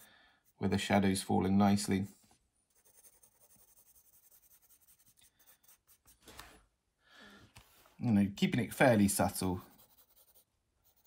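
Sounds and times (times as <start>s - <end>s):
pencil shading on paper: 0.0s - 0.6s, 2.7s - 6.2s, 9.6s - 11.0s.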